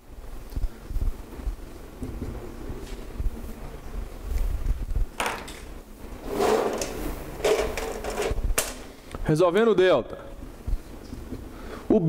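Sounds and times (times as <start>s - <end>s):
markers scraping and rattling in tray: 6.2s - 8.4s.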